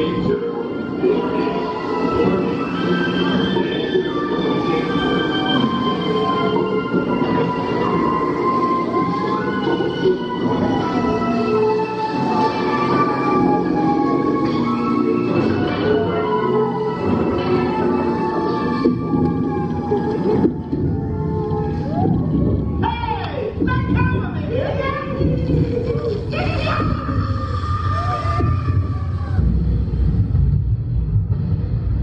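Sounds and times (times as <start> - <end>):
held musical tones: 0.0 - 29.2
low rumble: 23.5 - 32.0.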